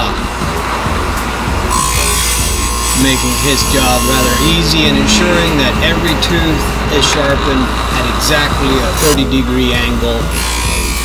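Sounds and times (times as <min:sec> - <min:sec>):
background music: 0:00.0 - 0:11.0
chain grinder grinding: 0:01.7 - 0:05.7, 0:10.2 - 0:11.0.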